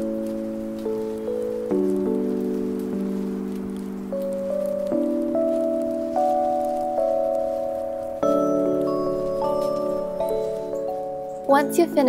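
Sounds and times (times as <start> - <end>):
soft chime-like music: 0.0 - 12.0.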